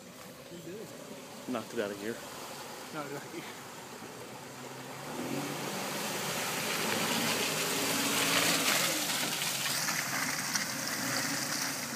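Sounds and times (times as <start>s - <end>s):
water sloshing around tyres: 0.0s - 11.9s.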